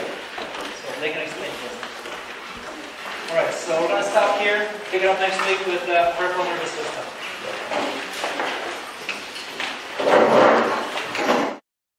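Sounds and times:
rustling scraping noise: 0:00.0 - 0:11.6.

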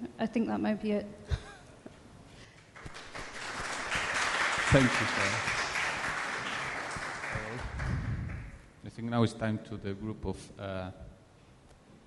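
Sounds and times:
audience applause: 0:02.8 - 0:08.6.

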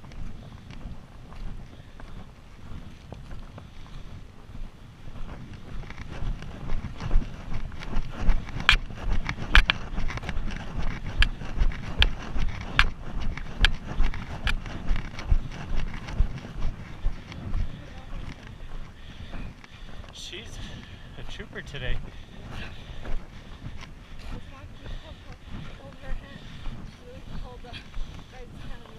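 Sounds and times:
footsteps crunching on gravel: 0:00.0 - 0:28.9
wind rumble on microphone: 0:00.0 - 0:28.9.

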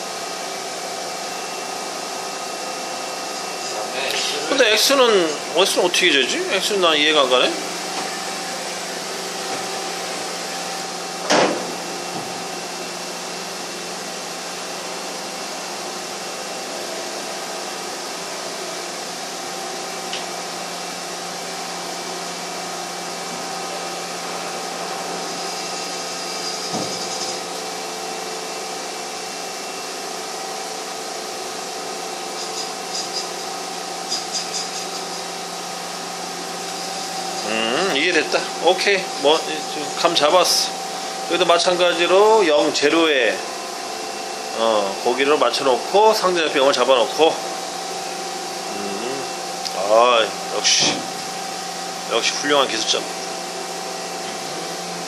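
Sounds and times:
machining center humming: 0:00.0 - 0:55.0.

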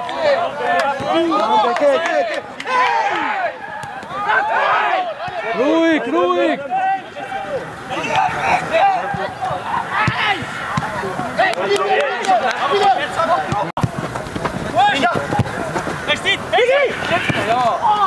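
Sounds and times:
men shouting on a pitch: 0:00.0 - 0:13.7, 0:14.7 - 0:18.0.

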